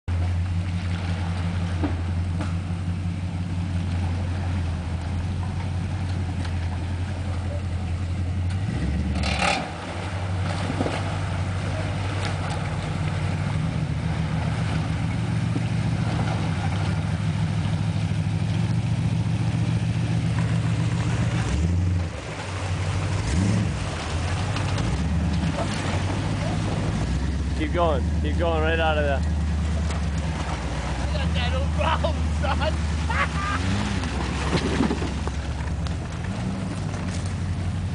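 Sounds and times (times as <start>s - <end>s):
truck engine revving: 0.1s - 37.9s
truck engine under load: 0.1s - 37.9s.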